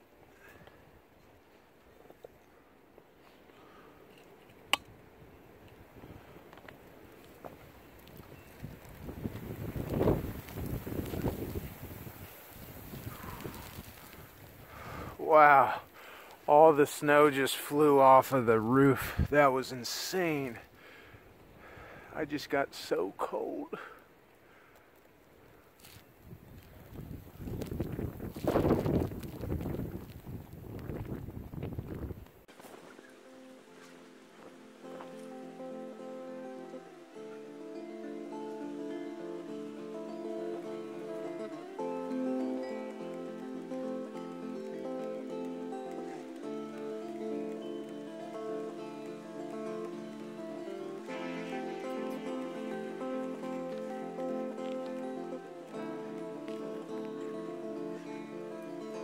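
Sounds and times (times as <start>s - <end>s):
wind gust buffeting microphone: 8.2s - 15.2s, 26.2s - 32.4s.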